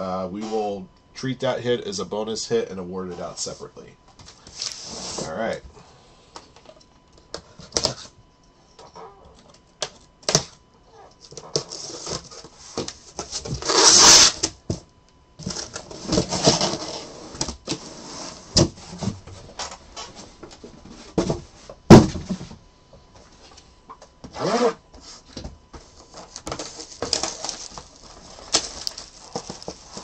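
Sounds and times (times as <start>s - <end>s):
rustling and tapping: 25.3s - 30.0s.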